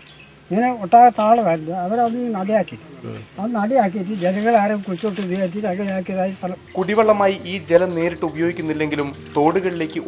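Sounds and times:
elderly man talking: 0.5s - 10.0s.

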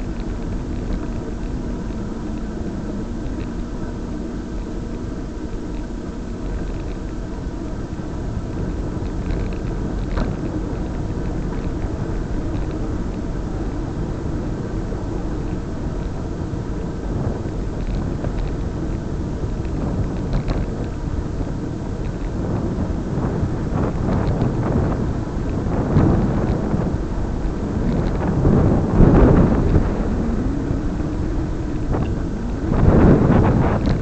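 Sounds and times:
road noise: 0.0s - 34.0s
wind buffeting microphone: 0.0s - 34.0s.

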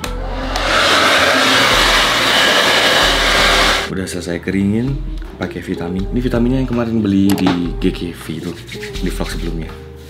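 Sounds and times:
hair dryer blowing: 0.0s - 3.9s.

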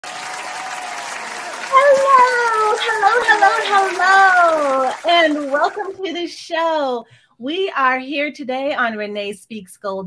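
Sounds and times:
dense applause: 0.0s - 6.2s.

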